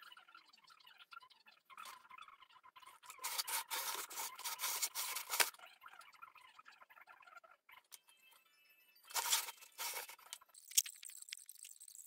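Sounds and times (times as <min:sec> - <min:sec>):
paintbrush scratching: 0:03.1 - 0:05.5, 0:09.1 - 0:10.3.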